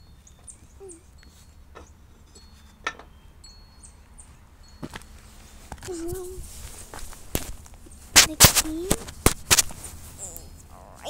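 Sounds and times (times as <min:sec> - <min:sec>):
person humming: 0:10.2 - 0:11.0.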